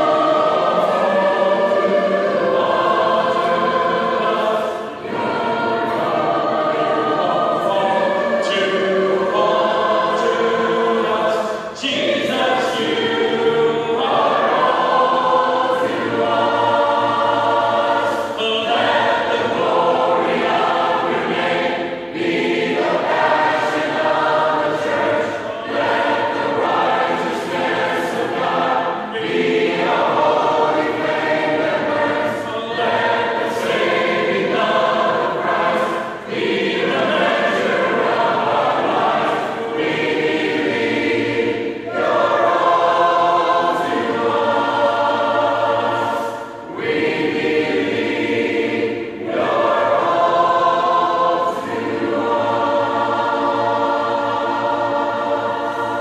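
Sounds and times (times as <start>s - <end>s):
choir singing in harmony: 0.0s - 56.0s.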